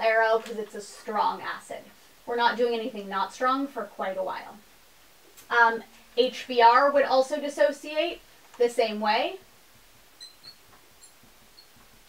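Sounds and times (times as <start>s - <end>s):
low hiss: 0.0s - 12.0s
marker squeaking on glass: 10.2s - 12.0s.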